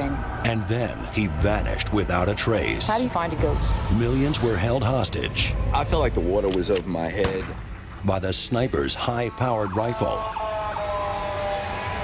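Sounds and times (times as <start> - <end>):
emergency vehicle siren: 0.0 - 7.3, 8.7 - 12.0.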